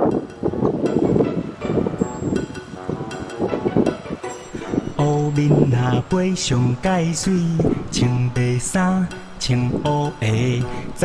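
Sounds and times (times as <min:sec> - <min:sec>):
background song: 0:00.0 - 0:11.0
wind rumbling on microphone: 0:00.0 - 0:11.0.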